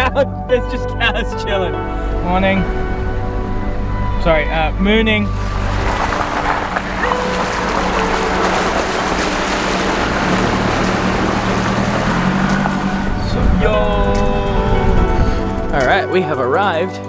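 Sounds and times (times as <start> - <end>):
music: 0.0 - 17.0
vehicle engine running: 1.7 - 16.8
water splashing against vehicle: 5.2 - 15.8.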